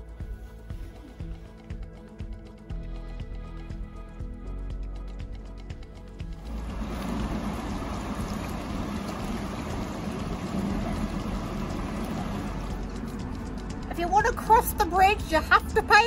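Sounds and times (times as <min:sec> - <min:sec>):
background music: 0:00.0 - 0:16.0
river flowing: 0:06.4 - 0:14.2.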